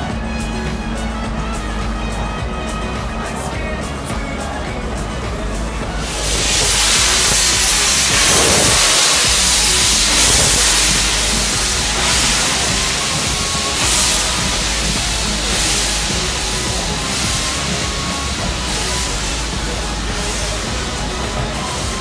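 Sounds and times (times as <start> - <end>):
steam locomotive blowing steam: 0.0 - 22.0.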